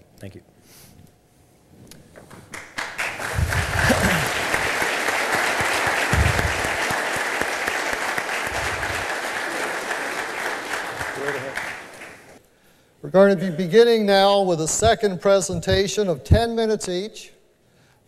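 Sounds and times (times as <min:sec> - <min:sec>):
audience applauding: 0:02.3 - 0:12.4.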